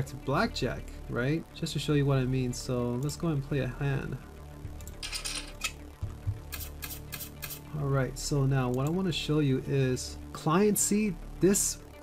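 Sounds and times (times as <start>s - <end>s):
faint background music: 0.0s - 12.0s
sharp clicks: 6.5s - 7.6s
card swishing effect: 6.5s - 7.7s.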